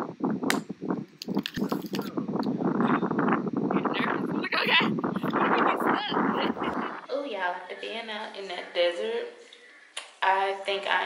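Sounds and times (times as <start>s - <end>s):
crackles and knocks: 0.0s - 7.1s
wind buffeting microphone: 0.0s - 7.2s.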